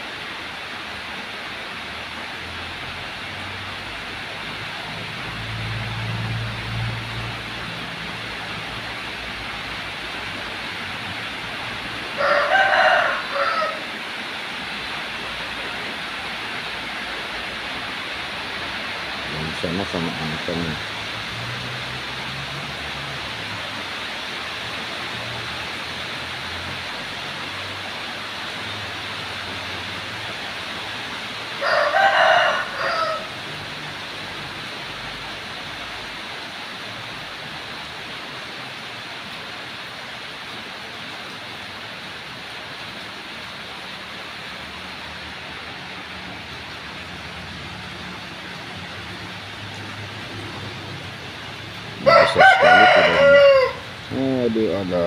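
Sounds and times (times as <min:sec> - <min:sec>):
steady background hiss: 0:00.0 - 0:55.0
rooster crowing: 0:12.0 - 0:14.0, 0:31.5 - 0:33.8, 0:52.0 - 0:54.1.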